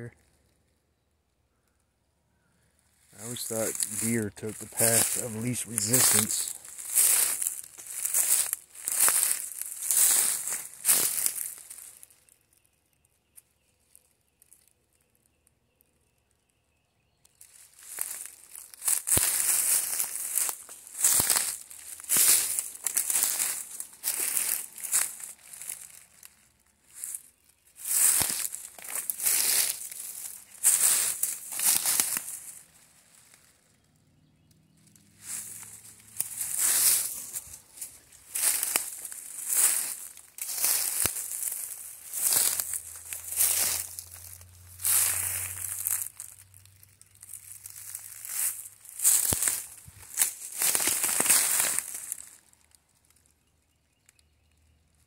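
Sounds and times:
undergrowth rustling: 3.0 - 14.7, 17.3 - 53.5
footsteps crunching through dry leaves: 3.1 - 12.5, 17.4 - 53.5.

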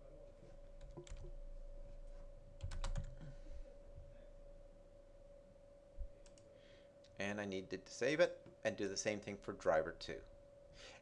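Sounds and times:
faint steady hum: 0.0 - 11.0
computer keyboard keystrokes: 0.8 - 1.3, 2.6 - 3.3.

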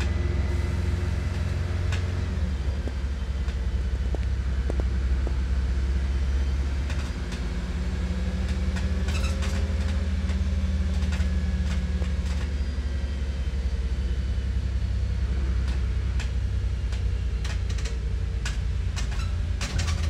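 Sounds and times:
bus engine drone: 0.0 - 20.0.

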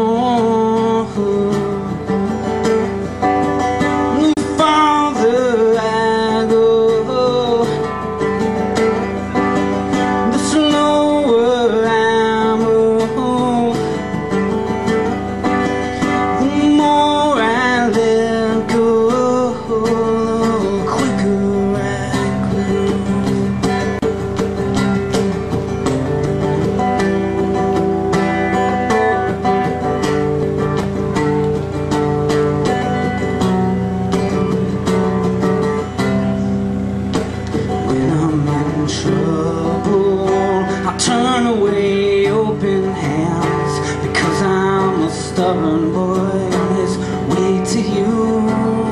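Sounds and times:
acoustic guitar chords: 0.0 - 48.9.

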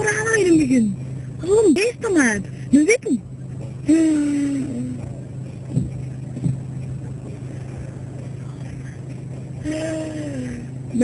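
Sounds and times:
low engine hum: 0.0 - 11.0.

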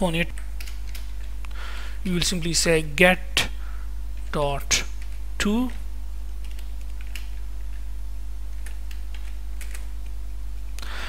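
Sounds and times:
steady low hum: 0.0 - 11.0
keyboard keystrokes: 0.3 - 1.3, 6.4 - 7.4, 8.5 - 10.2.

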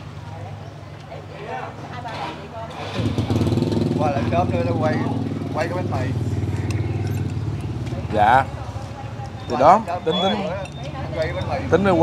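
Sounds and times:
voices talking: 0.0 - 12.0
motorbike engine running: 2.8 - 9.2.

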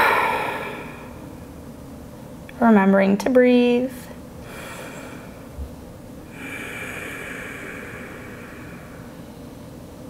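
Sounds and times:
person breathing through nose: 0.0 - 1.2, 4.4 - 5.5, 6.3 - 9.2.

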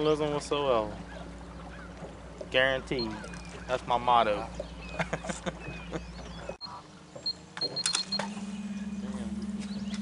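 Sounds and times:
short high beeps: 7.6 - 10.0.

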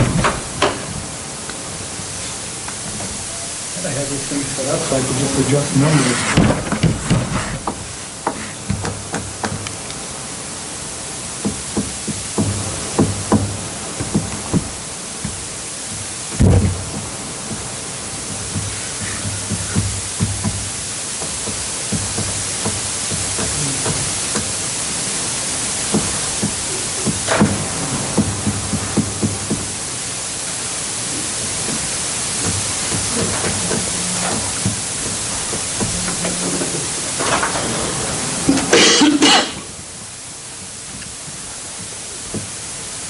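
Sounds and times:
loud thump: 0.0 - 0.9, 11.5 - 17.0, 25.9 - 29.8
room noise hiss: 0.0 - 43.0
light clicks and knocks: 6.3 - 10.0, 11.4 - 24.7, 31.2 - 38.9.

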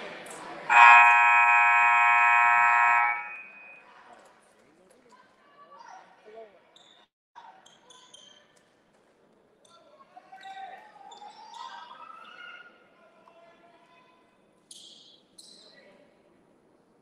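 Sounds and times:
scoreboard horn buzz: 0.7 - 3.8.

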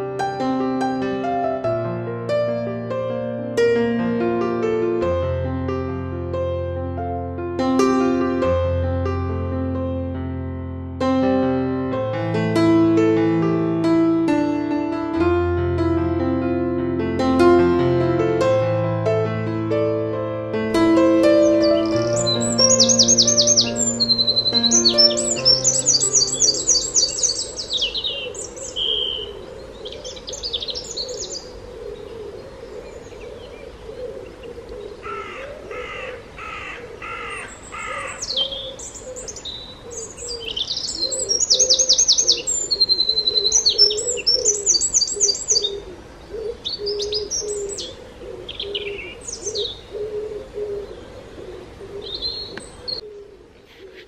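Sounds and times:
soft piano melody: 0.0 - 36.3, 37.0 - 53.0
birds singing and chirping: 21.2 - 53.2
harsh repeated bird calls: 21.2 - 54.0.

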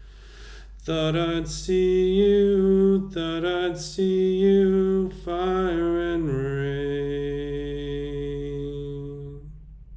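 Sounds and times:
person singing a long note: 0.9 - 9.6.

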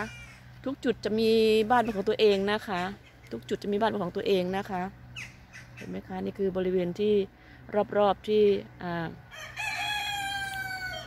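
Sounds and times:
rooster crowing: 9.3 - 11.0.

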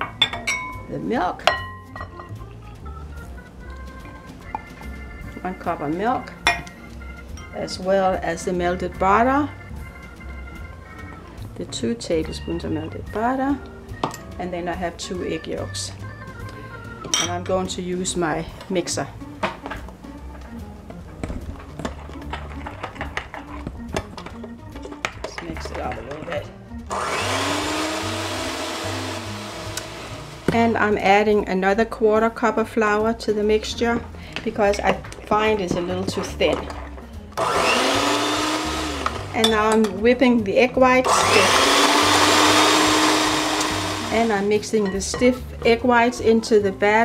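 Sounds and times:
background music: 0.0 - 47.0
electric hand mixer whining: 26.9 - 30.5, 37.4 - 39.4, 41.0 - 44.5.

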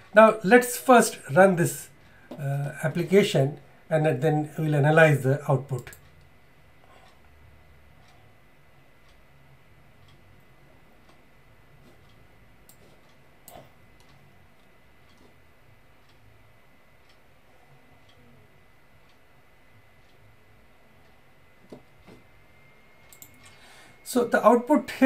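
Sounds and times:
faint high whine: 0.0 - 25.0
low hum: 0.0 - 25.0
faint irregular ticks: 10.0 - 11.2.

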